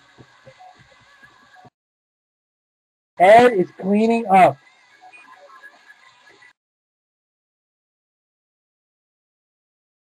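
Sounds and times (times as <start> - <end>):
faint indistinct room noises: 0.0 - 1.7, 3.2 - 6.6.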